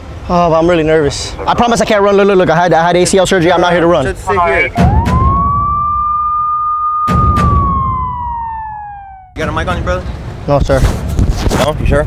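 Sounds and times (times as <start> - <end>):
police siren wail: 4.8 - 9.4.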